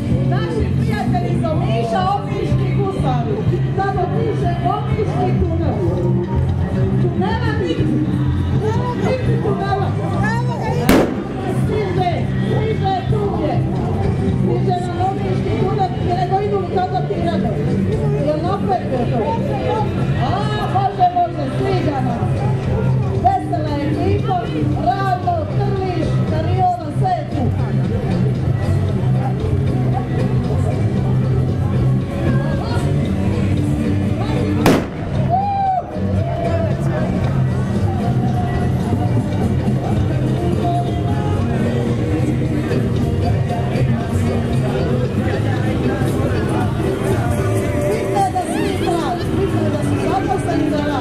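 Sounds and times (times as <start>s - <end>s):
music with bass line and voice: 0.0s - 51.0s
sharp bang: 10.9s - 11.9s.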